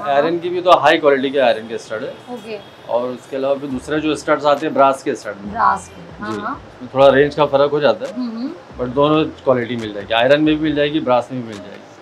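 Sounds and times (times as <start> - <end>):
man talking: 0.0 - 2.3, 2.9 - 5.5, 6.2 - 11.9.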